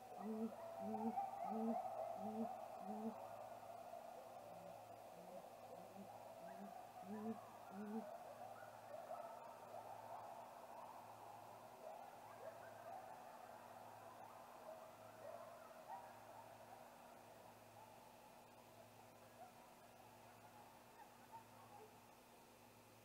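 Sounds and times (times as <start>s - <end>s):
owl hooting: 0.0s - 3.2s, 5.2s - 8.1s
steady low hum: 0.0s - 3.2s, 4.7s - 8.1s.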